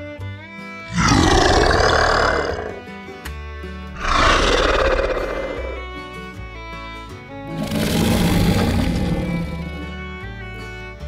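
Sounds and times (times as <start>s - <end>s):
background music: 0.0s - 11.0s
dinosaur roars: 0.9s - 2.8s, 4.0s - 6.0s, 7.5s - 10.0s.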